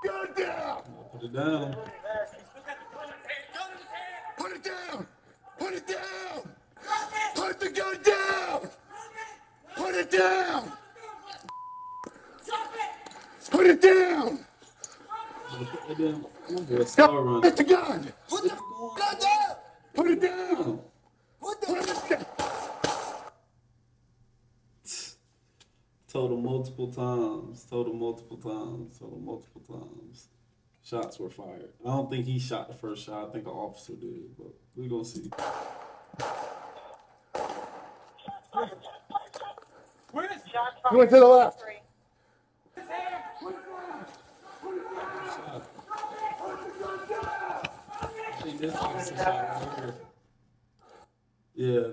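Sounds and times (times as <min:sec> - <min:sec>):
high-pitched censor bleep: 0:11.5 - 0:12.1, 0:18.6 - 0:19.0
gunshot ringing out: 0:22.0 - 0:23.3, 0:35.3 - 0:38.0
person shouting: 0:42.8 - 0:50.0.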